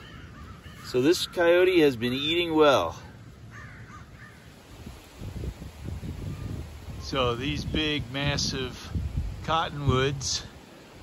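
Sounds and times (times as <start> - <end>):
distant raven caw: 0.0 - 1.9, 2.9 - 4.7.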